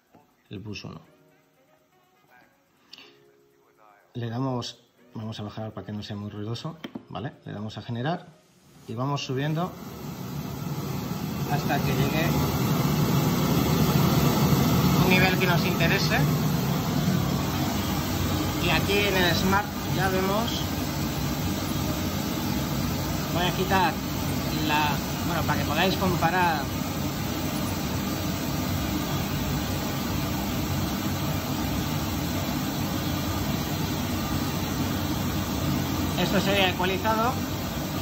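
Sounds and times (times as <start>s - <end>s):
pink noise through speaker: 8.6s - 38.0s.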